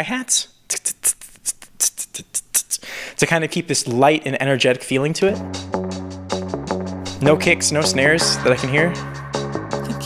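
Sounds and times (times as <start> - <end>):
beatbox hi-hat sounds: 0.7 - 2.9, 5.3 - 10.0.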